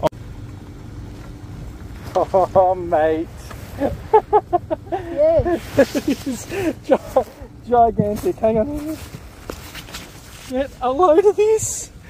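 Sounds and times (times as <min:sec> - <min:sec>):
faint steady hum: 0:00.0 - 0:12.0
wind buffeting microphone: 0:03.2 - 0:12.0.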